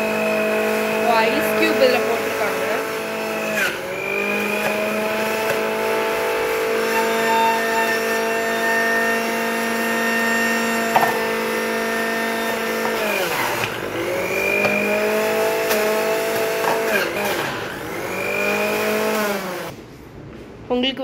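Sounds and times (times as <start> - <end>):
mixer grinder motor whine: 0.0 - 19.8.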